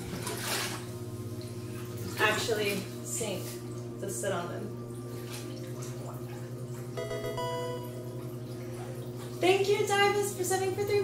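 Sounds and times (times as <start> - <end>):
water sloshing and splashing: 0.0 - 7.0, 7.8 - 11.0
steady low hum: 0.0 - 11.0.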